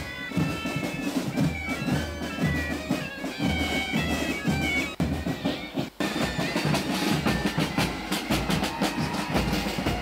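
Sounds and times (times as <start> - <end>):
bagpipes: 0.0 - 10.0
marching drums beating: 0.0 - 10.0.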